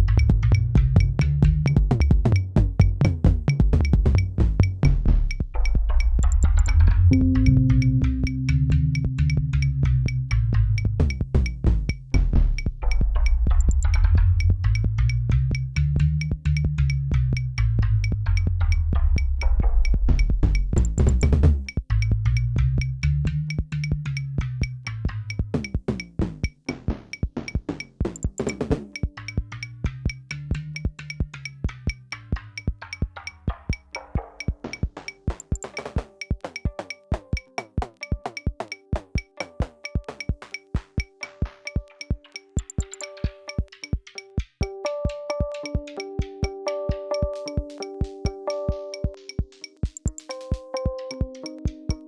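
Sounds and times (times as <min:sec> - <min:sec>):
clicky percussion hits: 0:03.5 - 0:52.0
deep synth bass: 0:04.8 - 0:23.4.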